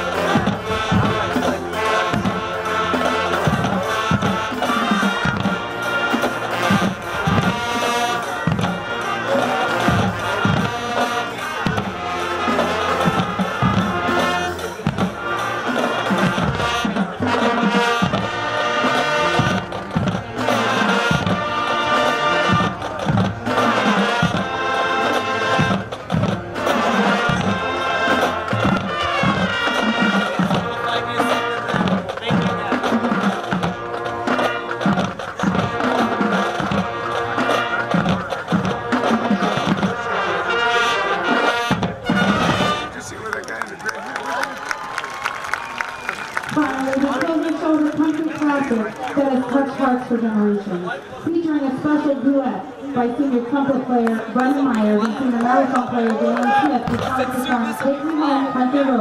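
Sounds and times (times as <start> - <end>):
marching drum beat: 0.0 - 43.4, 53.5 - 59.0
marching band playing: 0.0 - 59.0.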